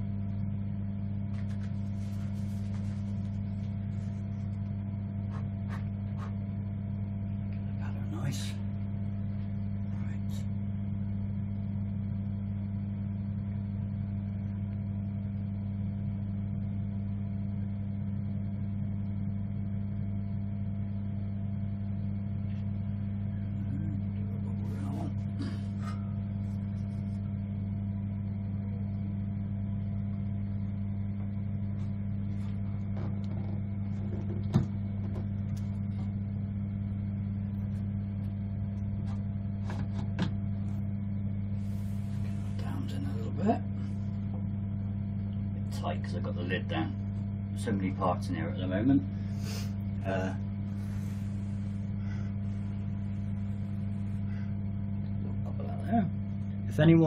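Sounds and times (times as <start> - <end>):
electrical hum of machinery: 0.0 - 57.0.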